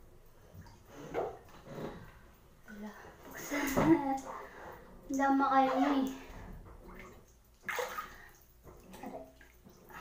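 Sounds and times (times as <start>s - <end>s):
bathwater sloshing: 0.0s - 10.0s
water splash: 6.8s - 10.0s.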